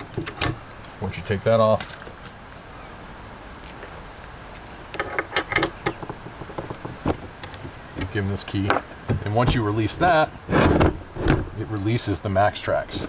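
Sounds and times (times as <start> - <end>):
faint background hiss: 0.0 - 13.0
padlock metallic clicks and rattles: 5.0 - 8.1.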